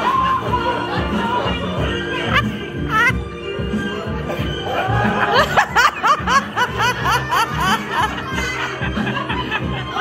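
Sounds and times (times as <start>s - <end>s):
background music: 0.0s - 10.0s
person laughing in high bursts: 4.3s - 9.6s.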